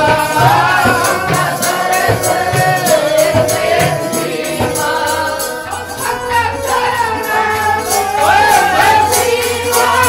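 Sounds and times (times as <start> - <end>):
group of voices singing: 0.0 - 10.0
harmonium: 0.0 - 10.0.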